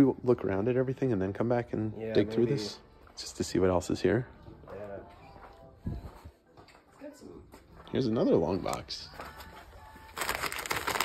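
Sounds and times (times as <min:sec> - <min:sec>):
plastic bags crinkling: 0:09.3 - 0:11.0.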